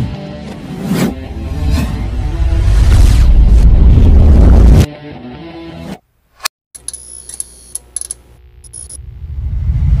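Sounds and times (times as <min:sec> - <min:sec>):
low rumble: 0:01.3 - 0:04.8, 0:09.0 - 0:10.0.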